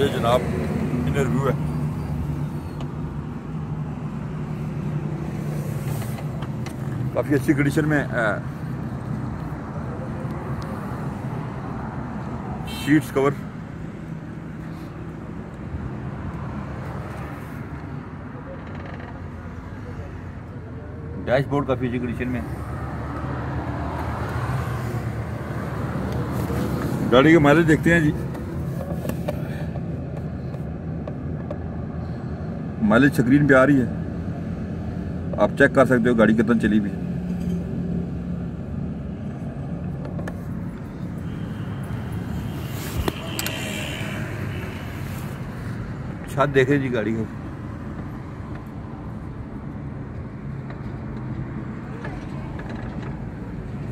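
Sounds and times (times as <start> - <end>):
car engine hum inside cabin: 36.2 - 46.4.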